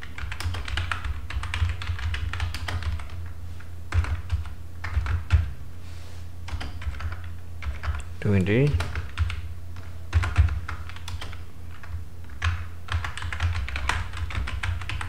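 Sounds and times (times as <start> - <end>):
keyboard typing: 0.0 - 3.3, 3.9 - 5.6, 6.5 - 15.0.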